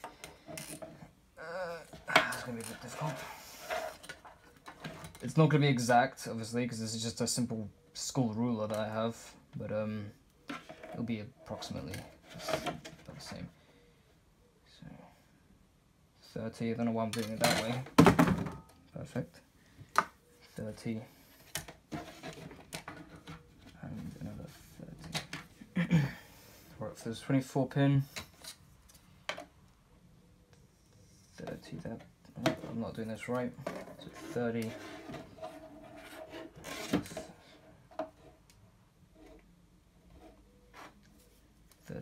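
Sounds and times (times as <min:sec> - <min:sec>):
scrape on desk: 0:03.0 - 0:04.1, 0:34.0 - 0:37.3.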